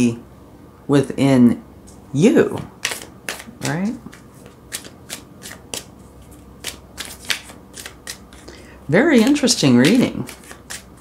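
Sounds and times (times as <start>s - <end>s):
cards being shuffled: 2.8s - 11.0s.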